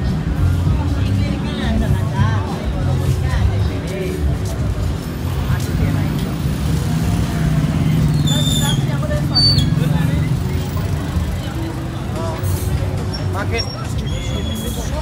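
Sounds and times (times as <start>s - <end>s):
music from roadside bars: 0.0s - 15.0s
voices of passers-by: 0.0s - 15.0s
road traffic rumbling past: 4.2s - 15.0s.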